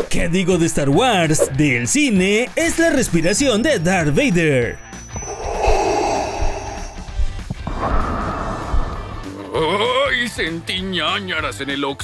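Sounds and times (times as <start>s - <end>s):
background music: 0.0s - 12.0s
mechanical respirator breathing: 5.0s - 9.4s.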